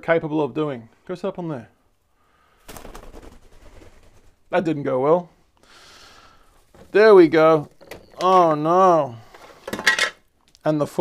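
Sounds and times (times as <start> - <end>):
bird wings flapping: 2.5 - 4.5
artificial tree branches rustling: 2.5 - 10.5.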